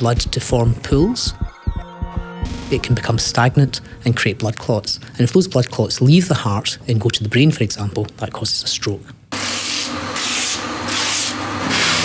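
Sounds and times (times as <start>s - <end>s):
rhythmic whooshing: 0.0s - 4.0s.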